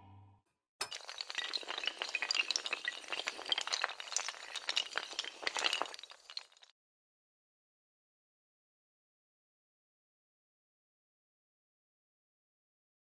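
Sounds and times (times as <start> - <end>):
dominoes toppling: 0.8 - 6.7.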